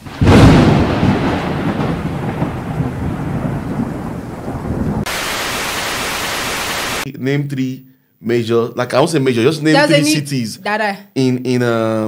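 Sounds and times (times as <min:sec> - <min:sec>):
rolling thunder rumble: 0:00.0 - 0:05.1
steady rain hiss: 0:02.0 - 0:07.1.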